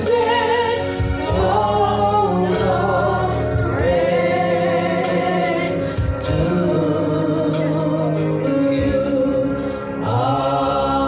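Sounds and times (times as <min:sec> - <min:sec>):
man and woman singing gospel: 0:00.0 - 0:11.0.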